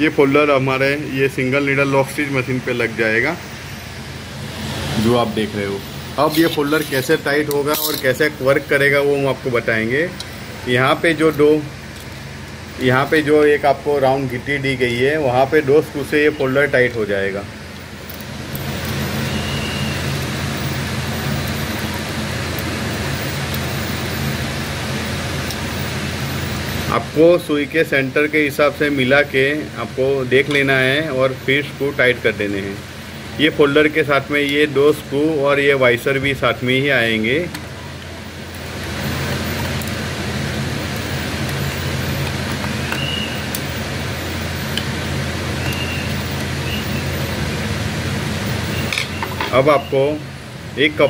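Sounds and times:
even hiss: 0.0s - 11.7s
mechanical hum and rumble: 0.0s - 51.0s.

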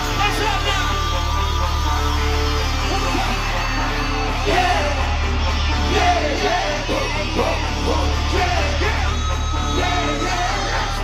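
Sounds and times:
audience screaming: 0.0s - 11.0s
heavy bass line: 0.0s - 11.0s
live vocals: 0.0s - 11.0s
pop song over loudspeakers: 0.0s - 11.0s.

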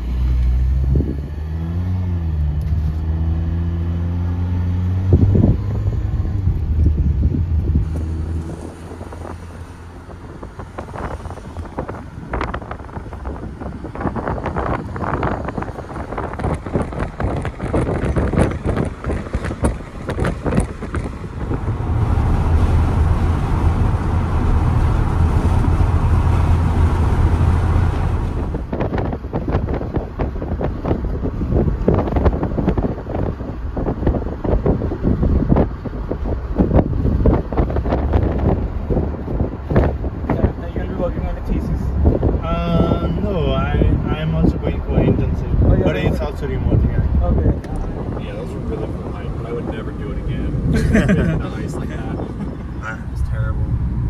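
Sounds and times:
car road and engine rumble: 0.0s - 54.0s
wind buffeting microphone: 0.6s - 2.3s, 4.7s - 54.0s.

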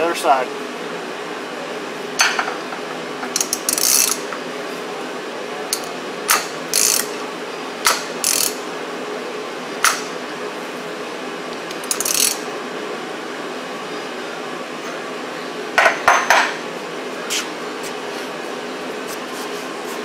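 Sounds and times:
ratchet wrench clicking: 3.4s - 4.2s, 5.7s - 7.1s, 7.9s - 8.6s, 11.7s - 12.4s.

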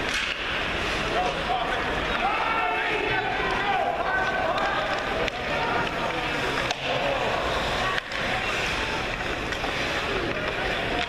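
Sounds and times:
skates scraping on ice: 0.0s - 11.0s
voices calling and chattering: 0.0s - 11.0s.

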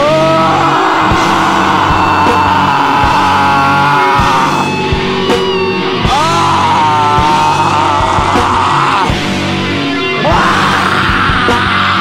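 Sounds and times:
bass: 0.0s - 12.0s
distorted electric guitar: 0.0s - 12.0s
drum hits: 1.0s - 9.7s.

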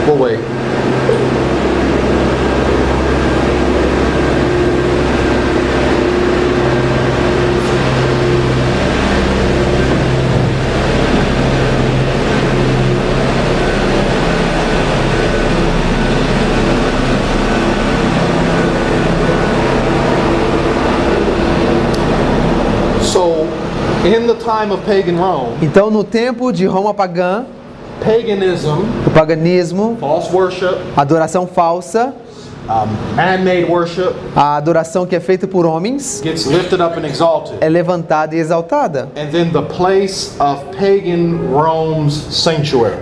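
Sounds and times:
machine hum and rumble: 0.0s - 43.0s.

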